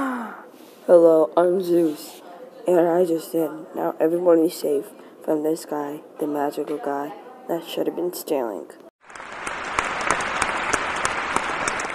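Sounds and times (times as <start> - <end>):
crowd applauding: 9.0 - 11.9.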